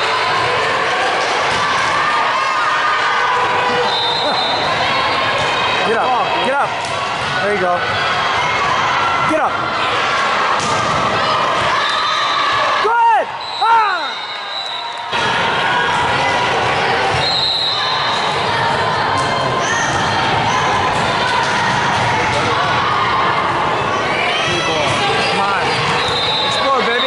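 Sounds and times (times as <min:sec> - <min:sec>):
crowd and player chatter: 0:00.0 - 0:27.0.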